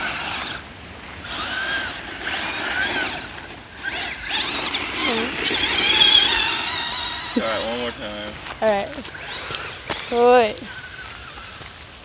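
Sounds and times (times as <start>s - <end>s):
rc truck electric motor whining: 0.0s - 0.6s, 1.2s - 8.0s, 9.0s - 11.6s.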